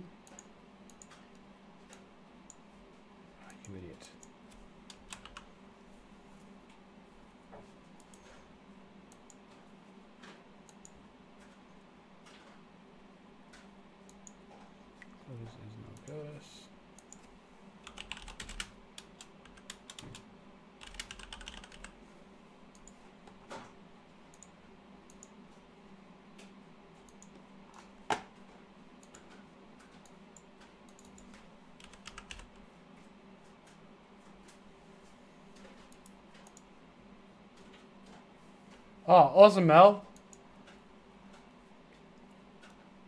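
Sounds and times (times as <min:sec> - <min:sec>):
faint steady hum: 0:00.0 - 0:43.0
computer keyboard typing: 0:04.9 - 0:05.5, 0:17.0 - 0:22.0, 0:29.9 - 0:32.6.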